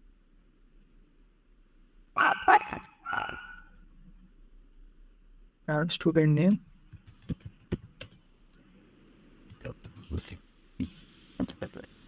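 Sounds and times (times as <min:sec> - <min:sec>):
dog barking: 0:02.2 - 0:03.7.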